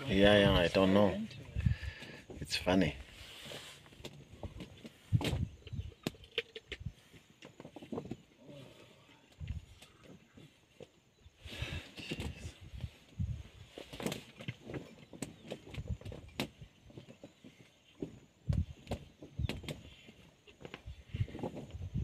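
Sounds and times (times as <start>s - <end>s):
rustling hiss: 1.6s - 5.5s.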